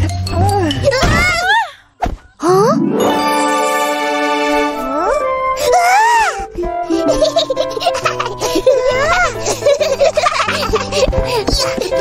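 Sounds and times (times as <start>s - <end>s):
cartoon child vocal glide: 2.4s - 3.1s
light background music: 2.5s - 12.0s
child giggling: 5.6s - 12.0s.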